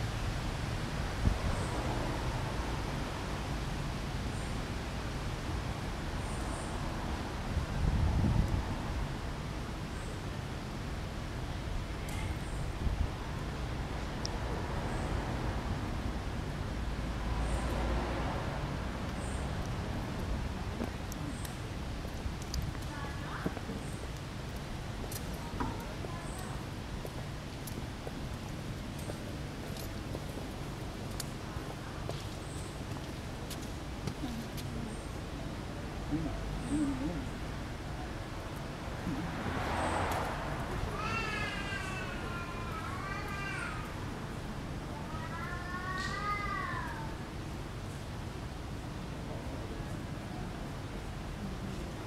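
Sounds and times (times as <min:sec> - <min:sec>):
low traffic rumble: 0:00.0 - 0:52.0
faint distant voices: 0:24.8 - 0:47.4.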